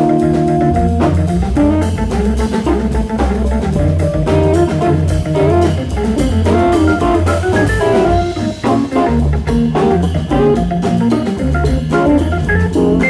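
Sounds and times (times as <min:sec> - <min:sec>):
busy drum beat: 0:00.0 - 0:13.0
electric guitar: 0:00.0 - 0:13.0
organ playing: 0:00.0 - 0:13.0.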